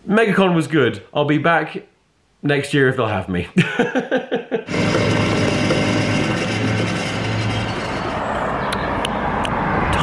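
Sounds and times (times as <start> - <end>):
vending machine motor hum: 4.7 - 8.2
steady mechanical noise: 4.7 - 8.5.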